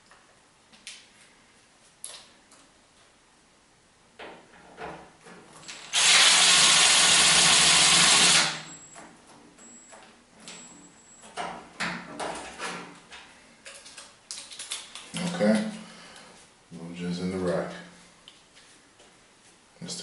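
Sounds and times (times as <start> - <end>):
cordless drill driving a screw: 5.7 - 8.8.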